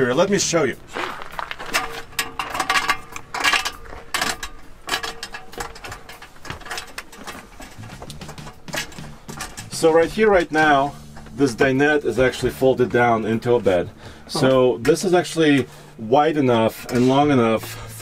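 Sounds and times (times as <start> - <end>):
faint steady hum: 0.0 - 18.0
footsteps on metal steps: 0.0 - 18.0.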